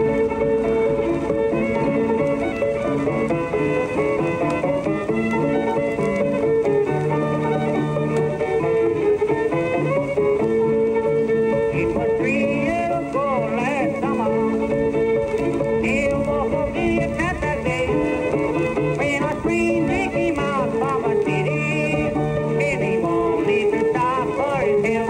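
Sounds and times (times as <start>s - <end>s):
instrumental music from radio: 0.0s - 25.0s.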